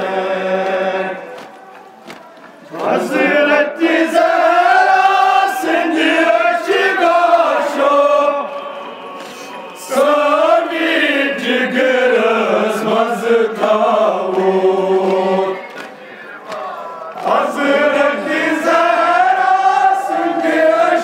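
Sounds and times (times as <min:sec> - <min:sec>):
men chanting a lament: 0:02.6 - 0:21.0.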